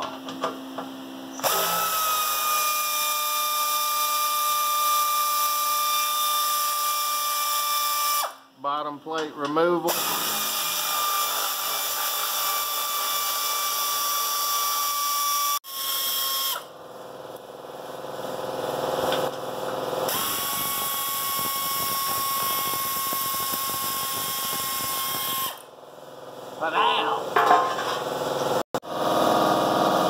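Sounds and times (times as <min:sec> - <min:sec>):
cordless drill whining: 0:01.4 - 0:03.0, 0:20.1 - 0:25.7.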